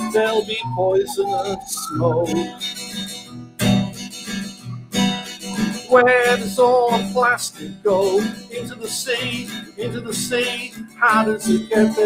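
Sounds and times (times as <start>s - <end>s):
man singing: 0.0s - 2.6s, 5.7s - 12.0s
acoustic guitar strumming: 0.0s - 12.0s.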